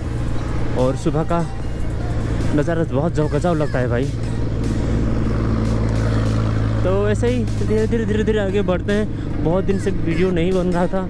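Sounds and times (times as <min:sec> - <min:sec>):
motorcycle engine running steadily: 0:00.0 - 0:11.0
road and wind noise: 0:00.0 - 0:11.0.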